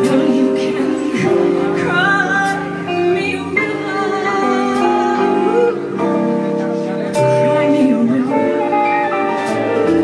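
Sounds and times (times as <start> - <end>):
guitar holding notes: 0.0 - 10.0
live jazz quartet playing: 0.0 - 10.0.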